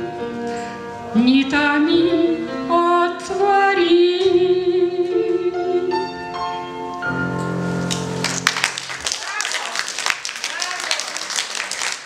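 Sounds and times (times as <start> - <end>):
audience applause: 7.9 - 12.0.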